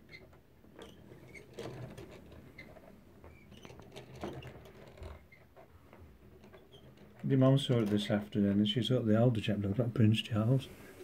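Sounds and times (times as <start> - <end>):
wooden mechanism clicks and creaks: 0.0 - 8.9.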